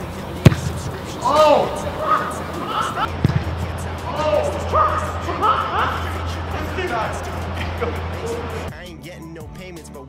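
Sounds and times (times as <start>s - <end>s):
ball kicked thud: 0.4s - 0.9s, 3.2s - 3.6s
person calling out: 1.2s - 3.1s.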